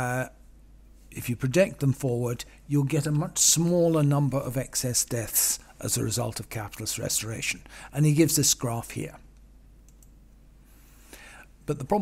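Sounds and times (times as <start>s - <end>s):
steady low hum: 0.0s - 12.0s
faint computer clicks: 9.3s - 10.2s.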